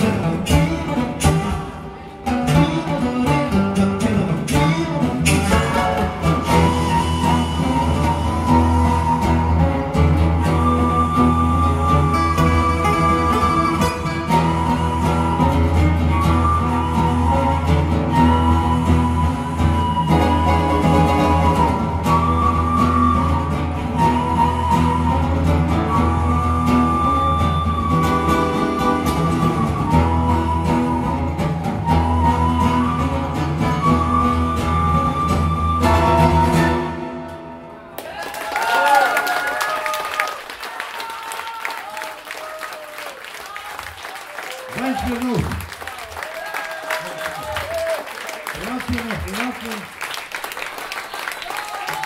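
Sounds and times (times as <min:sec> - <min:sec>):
acoustic guitars playing: 0:00.0 - 0:38.0.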